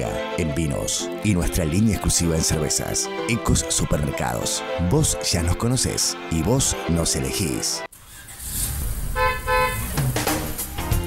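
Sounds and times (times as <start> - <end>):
car horn toots: 9.2 - 10.0.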